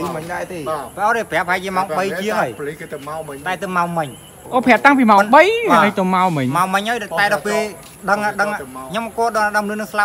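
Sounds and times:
man talking: 0:00.0 - 0:04.3, 0:06.5 - 0:10.0.

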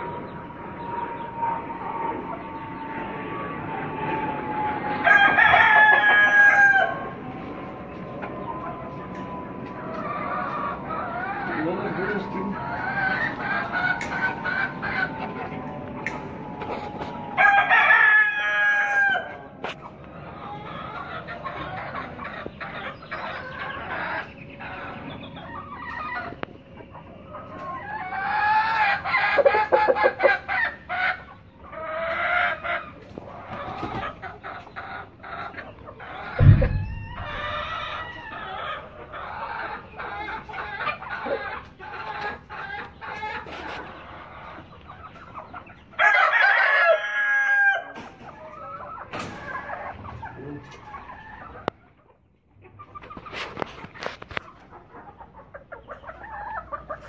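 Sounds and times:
roosters crowing: 0:00.0 - 0:51.7
hens clucking: 0:00.0 - 0:57.0.

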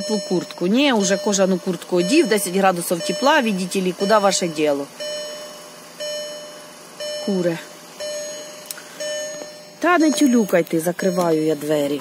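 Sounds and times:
car door warning chime: 0:00.0 - 0:12.0.

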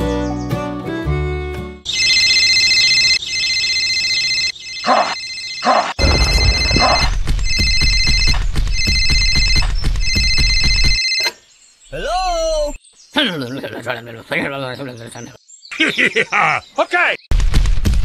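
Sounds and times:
electronic phone ringtone trill: 0:01.9 - 0:11.3.

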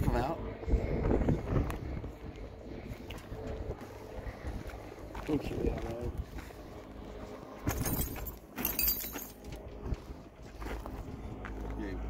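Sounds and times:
metal clanking and rattling: 0:07.7 - 0:09.5.

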